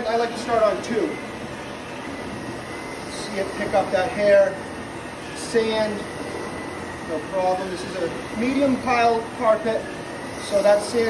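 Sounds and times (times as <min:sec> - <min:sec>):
vacuum cleaner on carpet: 0:00.0 - 0:11.0.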